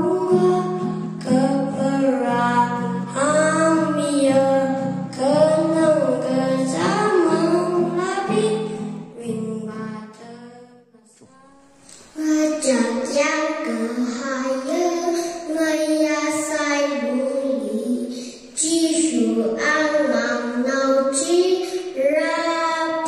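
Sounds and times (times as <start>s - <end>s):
boy singing into microphone: 0.0s - 23.0s
girl singing: 0.0s - 23.0s.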